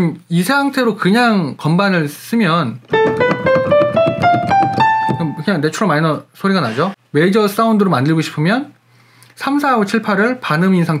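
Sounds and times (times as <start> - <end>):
keyboard playing a scale: 2.9 - 5.8.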